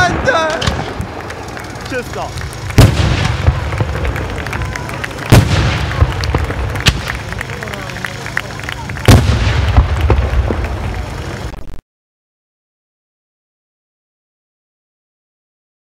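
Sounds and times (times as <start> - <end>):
firework booms with rolling rumble: 0.0 - 11.6
firework cracks and pops: 0.0 - 11.8.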